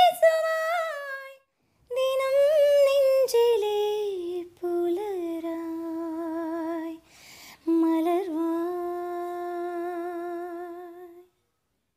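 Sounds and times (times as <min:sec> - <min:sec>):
woman inhaling: 0:07.0 - 0:07.6.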